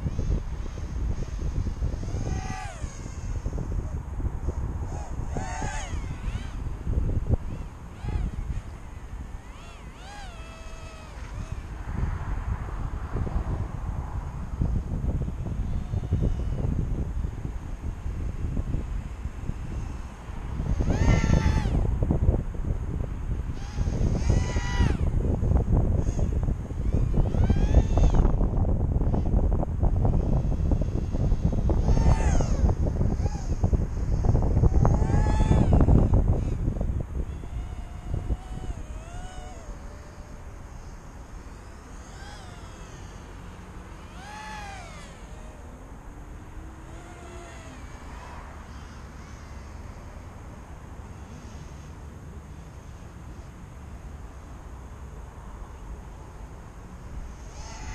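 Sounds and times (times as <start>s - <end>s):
wind buffeting on microphone: 0.0s - 51.8s, 56.8s - 57.9s
drone motors whining: 0.0s - 55.1s, 55.7s - 57.9s.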